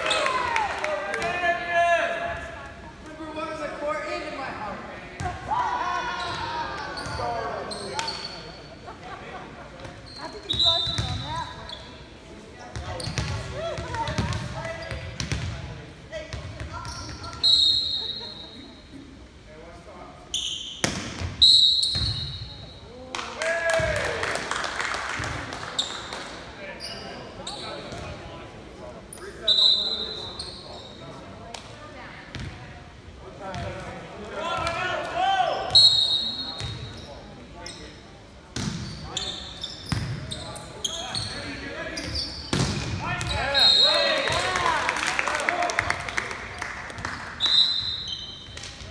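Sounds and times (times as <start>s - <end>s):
crowd shouting and cheering: 0.0s - 2.1s
referee whistle blasts: 21.4s - 22.4s, 35.7s - 36.6s, 43.3s - 44.1s, 47.4s - 48.4s.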